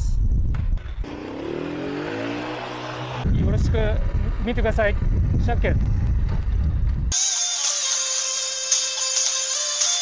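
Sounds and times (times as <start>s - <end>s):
moped engine revving: 1.0s - 7.2s.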